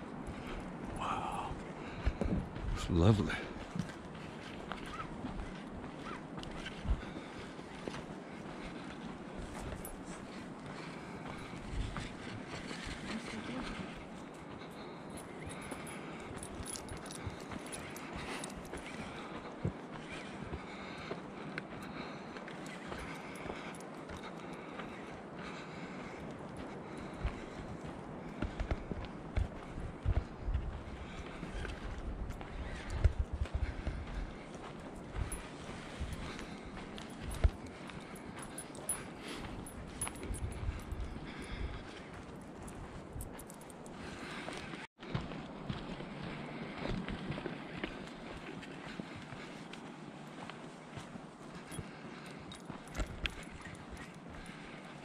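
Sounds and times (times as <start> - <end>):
footsteps on dirt trail: 0.0 - 55.0.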